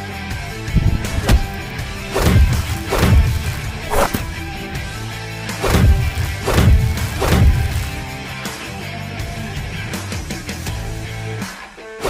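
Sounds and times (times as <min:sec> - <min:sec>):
background music: 0:00.0 - 0:12.0
punch whoosh and smack: 0:00.7 - 0:04.5, 0:05.6 - 0:08.0.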